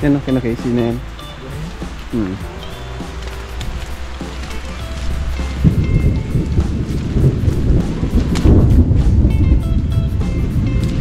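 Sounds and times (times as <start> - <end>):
background music: 0.0 - 11.0
heavy rain: 0.0 - 11.0
loud low rumbling: 1.1 - 11.0.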